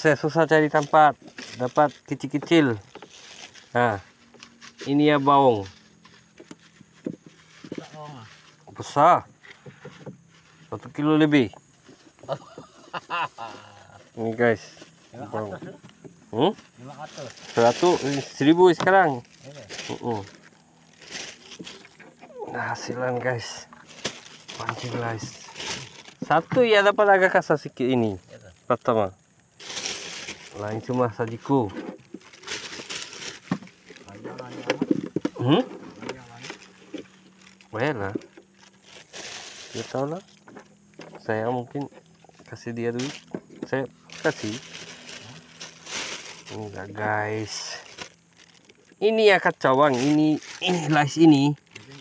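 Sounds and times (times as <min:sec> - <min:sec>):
plastic bag crinkling: 0:00.2 - 0:09.0, 0:16.4 - 0:26.6, 0:29.3 - 0:52.0.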